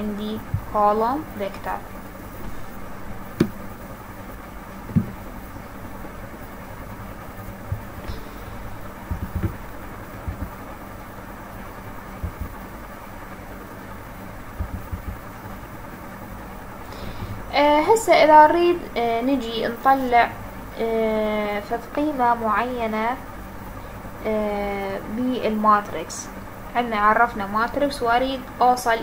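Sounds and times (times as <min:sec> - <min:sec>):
low background hum: 0:00.0 - 0:29.0
faint low knocks: 0:00.4 - 0:00.8, 0:03.3 - 0:03.7, 0:04.8 - 0:05.3, 0:07.6 - 0:10.7, 0:12.2 - 0:12.6, 0:14.6 - 0:15.3.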